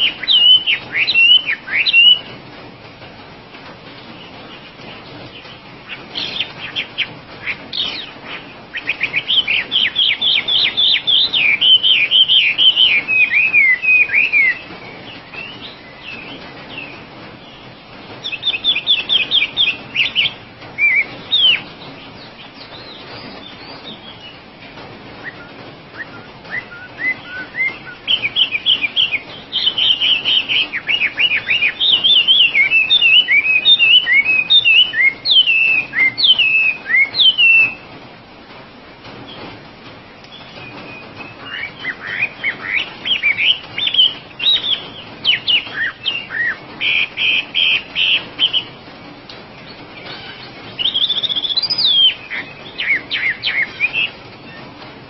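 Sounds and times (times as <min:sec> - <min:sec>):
bird singing whistled notes: 0:00.0 - 0:02.3, 0:05.3 - 0:24.4, 0:25.2 - 0:37.8, 0:40.3 - 0:48.8, 0:50.0 - 0:54.7.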